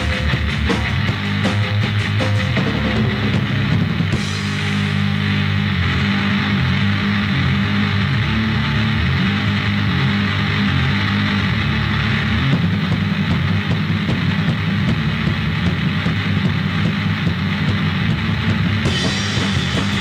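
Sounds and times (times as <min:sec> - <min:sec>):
punk band playing: 0:00.0 - 0:20.0.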